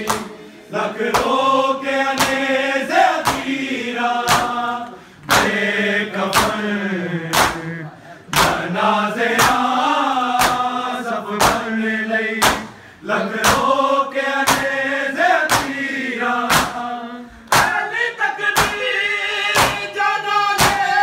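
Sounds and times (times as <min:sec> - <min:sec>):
hands beating chests: 0:00.0 - 0:00.4, 0:01.0 - 0:01.4, 0:02.1 - 0:02.5, 0:03.2 - 0:03.6, 0:04.2 - 0:04.6, 0:05.2 - 0:05.6, 0:06.3 - 0:06.6, 0:07.3 - 0:08.7, 0:09.3 - 0:09.7, 0:10.4 - 0:10.7, 0:11.4 - 0:11.7, 0:12.4 - 0:12.8, 0:13.4 - 0:13.7, 0:14.4 - 0:14.8, 0:15.4 - 0:15.8, 0:16.4 - 0:16.8, 0:17.5 - 0:17.8, 0:18.6 - 0:18.8, 0:19.5 - 0:19.9, 0:20.6 - 0:20.9
men chanting in unison: 0:00.0 - 0:21.0.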